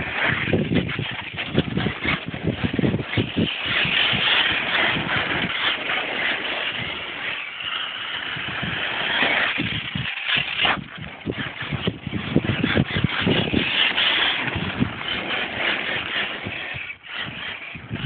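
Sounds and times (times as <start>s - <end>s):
rc truck driving over gravel: 0.0s - 18.0s.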